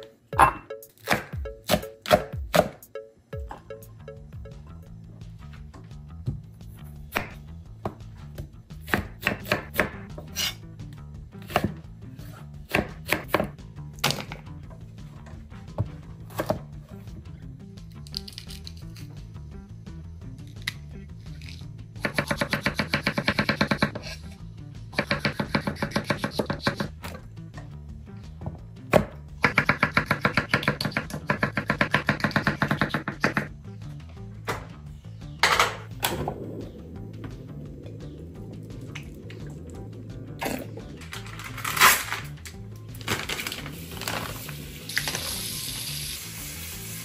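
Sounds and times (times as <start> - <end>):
background music: 0.0 - 47.0.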